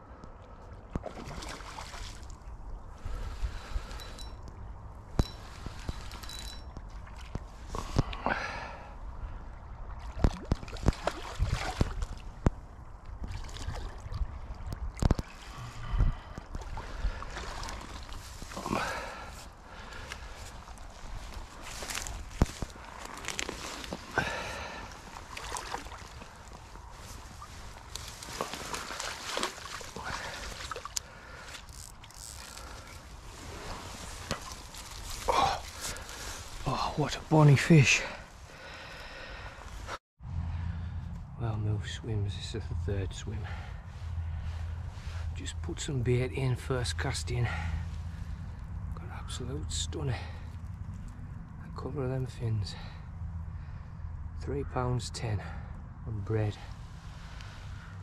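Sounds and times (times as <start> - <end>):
water sloshing and splashing: 0.9 - 2.6, 3.2 - 8.2, 9.3 - 36.8
handling knocks and rustles: 25.4 - 36.6.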